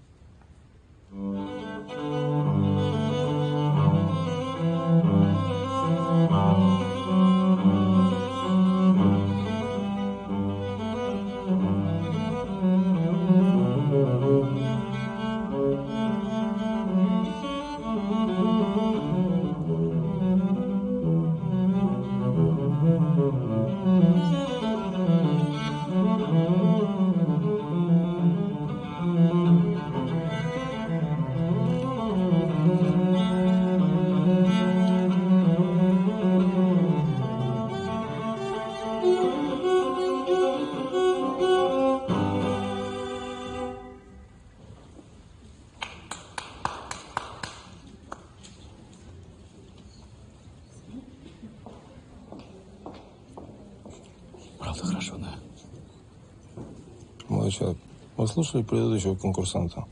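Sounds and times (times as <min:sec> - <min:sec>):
solo cello melody: 0:01.1 - 0:45.0.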